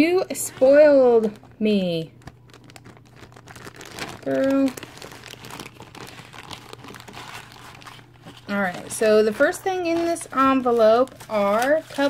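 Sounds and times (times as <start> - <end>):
plastic bag crinkling: 0.2 - 12.0.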